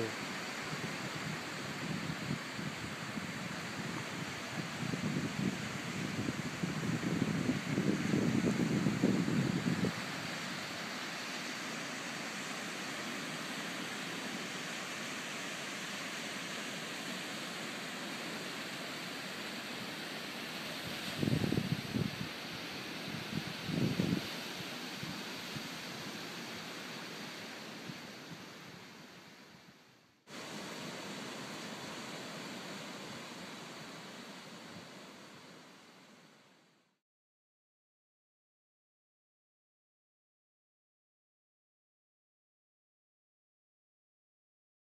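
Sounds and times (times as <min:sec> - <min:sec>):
surf hissing: 0:00.0 - 0:36.4
wind buffeting microphone: 0:00.7 - 0:10.3, 0:20.8 - 0:25.8.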